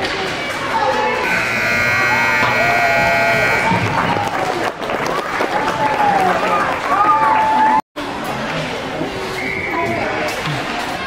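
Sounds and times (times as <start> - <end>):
buzzer steady tone: 1.2 - 3.9.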